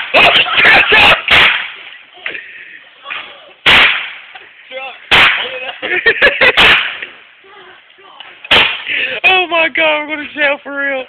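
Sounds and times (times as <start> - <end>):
fireworks loud bangs: 0.0 - 2.0, 3.2 - 4.4, 5.1 - 7.3, 8.4 - 9.2.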